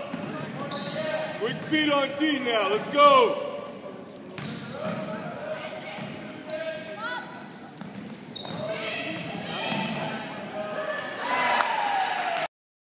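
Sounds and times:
basketball bouncing on court: 0.0s - 1.0s, 4.4s - 5.2s, 7.7s - 10.2s
shoe squeaks: 0.2s - 1.2s, 3.2s - 9.8s.

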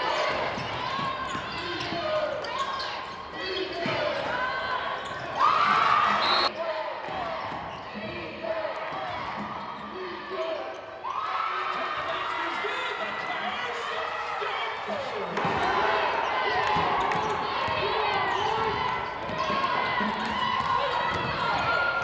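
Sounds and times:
players and crowd voices: 0.0s - 22.0s.

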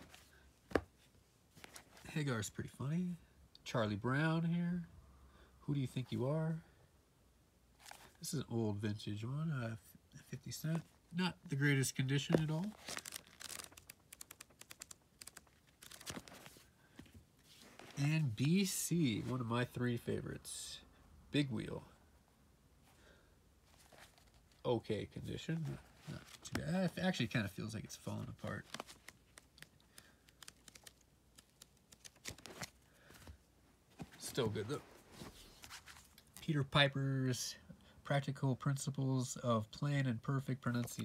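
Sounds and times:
book pages riffling: 0.0s - 2.1s, 12.1s - 18.0s, 23.7s - 24.6s, 25.6s - 27.0s, 28.2s - 36.4s
book rustling: 0.0s - 2.1s, 7.8s - 8.3s, 10.7s - 19.5s, 23.6s - 24.6s, 25.6s - 36.4s
comic book pages flicking: 12.3s - 16.6s, 28.4s - 32.8s.

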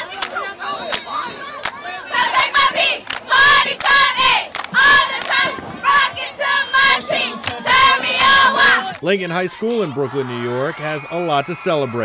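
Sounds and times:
cheerleaders chanting in unison: 0.0s - 10.7s.

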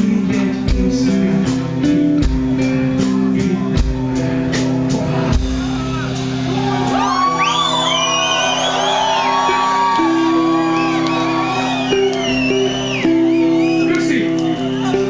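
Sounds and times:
rock band holding a chord: 0.0s - 15.0s
audience whooping and shouting: 5.0s - 15.0s.

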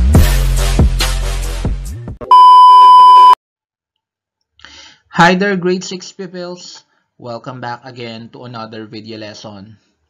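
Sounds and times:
test tone beep: 2.3s - 3.4s.

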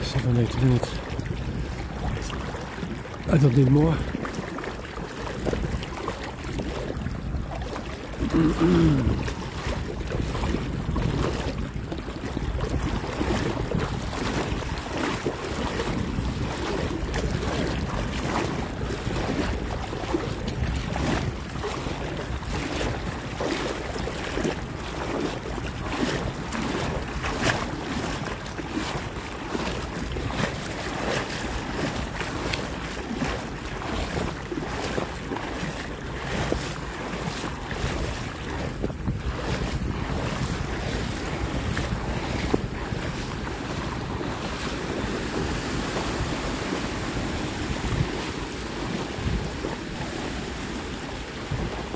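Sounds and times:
calm sea washing: 0.0s - 51.9s
wind buffeting microphone: 0.0s - 51.9s.

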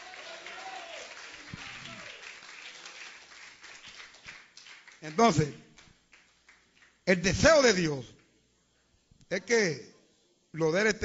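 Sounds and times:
congregation applauding: 0.0s - 7.7s.

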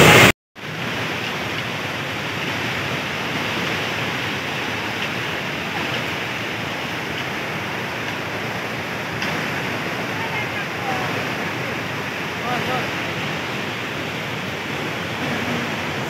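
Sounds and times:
river rushing: 0.0s - 16.0s.

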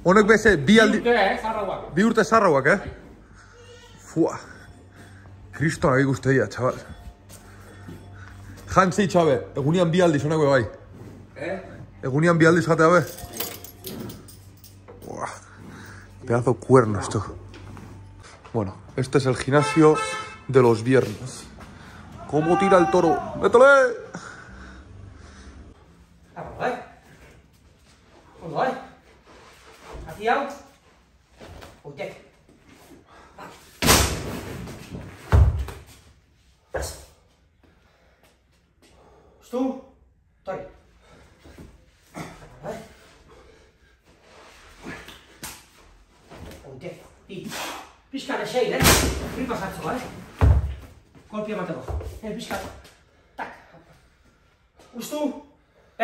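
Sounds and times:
man shouting: 22.2s - 24.0s.

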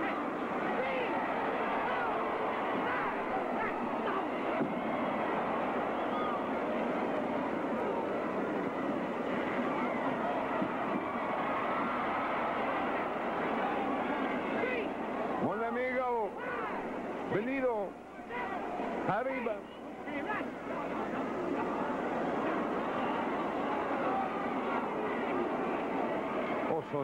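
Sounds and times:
crowd shouting: 0.0s - 27.0s.

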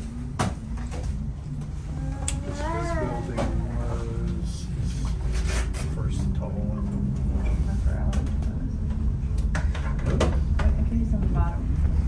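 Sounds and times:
tram cabin rumbling on cables: 0.5s - 12.0s.

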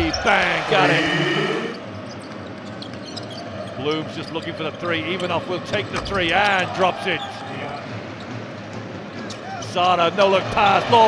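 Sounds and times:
arena crowd noise: 0.0s - 2.6s, 3.8s - 11.0s.

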